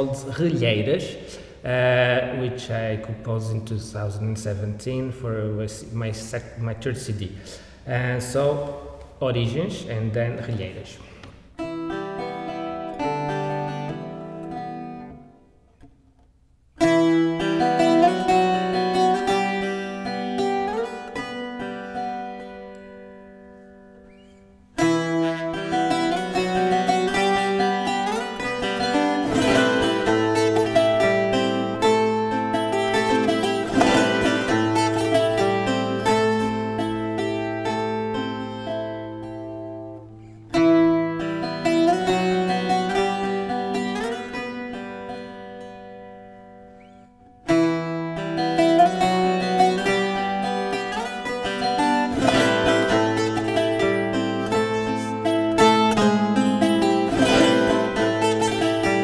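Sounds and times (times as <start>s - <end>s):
plucked string instrument: 0.0s - 59.0s.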